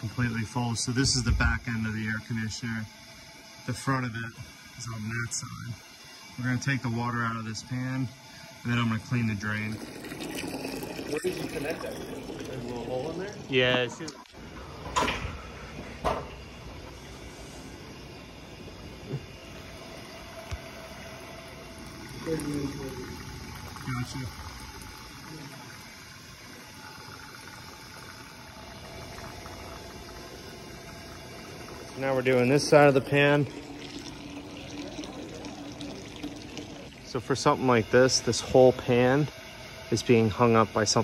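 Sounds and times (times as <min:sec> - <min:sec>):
faint hum: 0:00.0 - 0:41.0
steady background hiss: 0:00.0 - 0:41.0.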